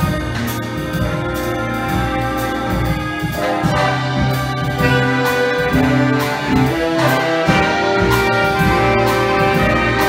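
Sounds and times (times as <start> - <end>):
jazz big band playing: 0.0 - 10.0.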